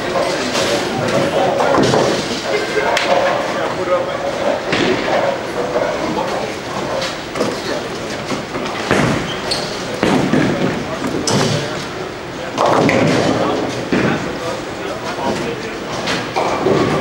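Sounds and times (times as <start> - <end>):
indistinct chatter in a hall: 0.0 - 17.0
bowling balls crashing into pins: 0.2 - 3.5, 4.7 - 14.6, 15.2 - 17.0.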